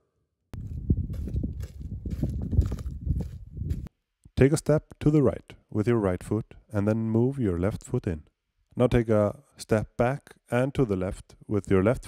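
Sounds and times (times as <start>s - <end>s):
soft low thumps and rumbling: 0.6s - 3.9s.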